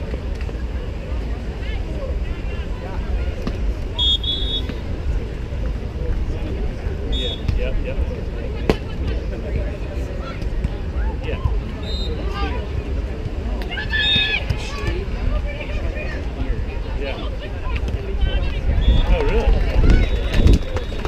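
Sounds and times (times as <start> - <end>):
spectator chatter: 0.0 - 21.0
wind rumble on microphone: 16.3 - 21.0.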